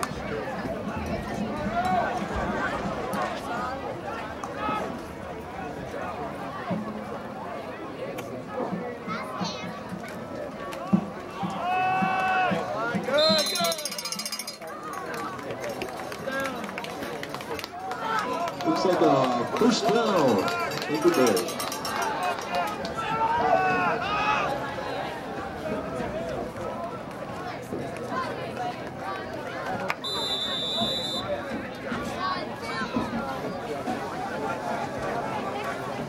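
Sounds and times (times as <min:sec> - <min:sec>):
voices yelling and cheering: 0:10.3 - 0:15.0, 0:17.6 - 0:36.0.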